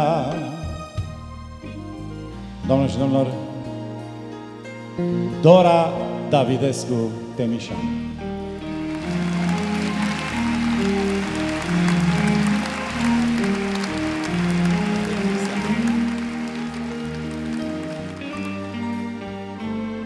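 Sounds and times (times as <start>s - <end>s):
live band playing slow melody: 7.8s - 20.0s
audience applause: 8.6s - 19.6s.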